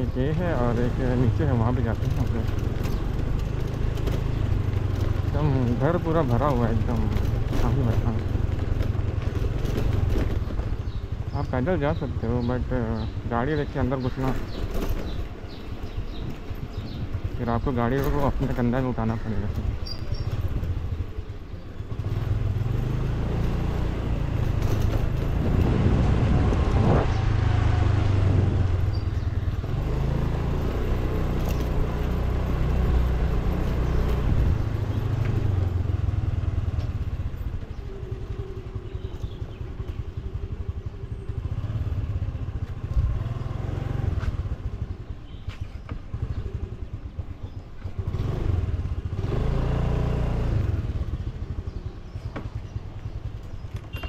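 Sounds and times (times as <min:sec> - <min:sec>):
motor scooter engine rumble: 0:00.0 - 0:54.0.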